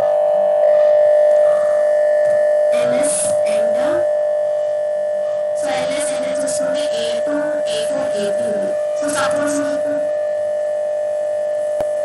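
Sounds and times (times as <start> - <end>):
steady mid-pitched tone: 0.0 - 12.0.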